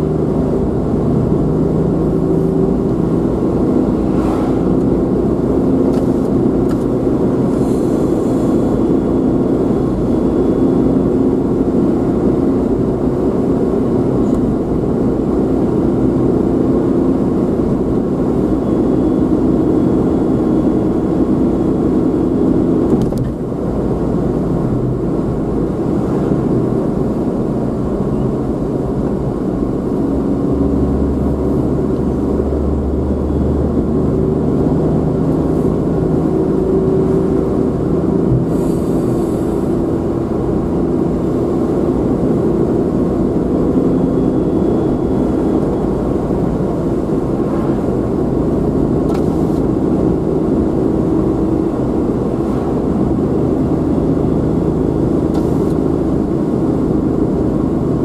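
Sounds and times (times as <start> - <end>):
vehicle engine and road noise: 0.0 - 58.0.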